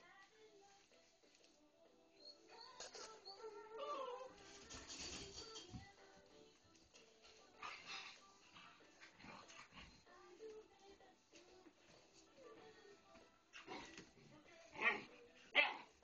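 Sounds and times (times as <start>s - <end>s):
faint background music: 0.0s - 16.0s
puppies whining and whimpering: 2.2s - 4.8s.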